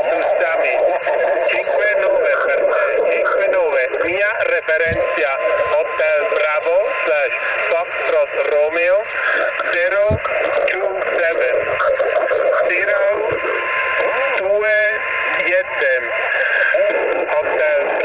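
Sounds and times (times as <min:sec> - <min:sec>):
radio band noise hiss: 0:00.0 - 0:18.0
voice over radio speaker: 0:00.0 - 0:18.0.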